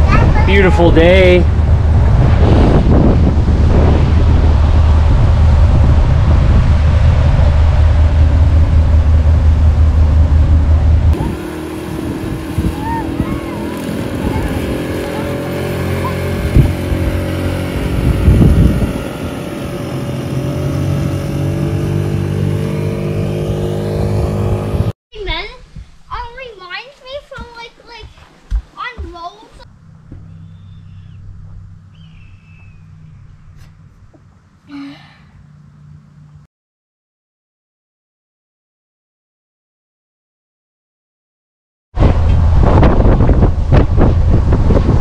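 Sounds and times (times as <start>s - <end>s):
motorboat engine: 0.0s - 24.9s, 29.7s - 36.4s
wind rumble on microphone: 0.0s - 24.9s, 42.0s - 45.0s
small outboard motor running: 4.2s - 24.9s.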